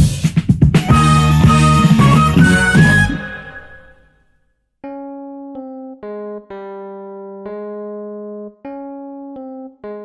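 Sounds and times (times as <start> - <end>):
plucked string melody: 0.8 - 4.1, 4.8 - 10.0.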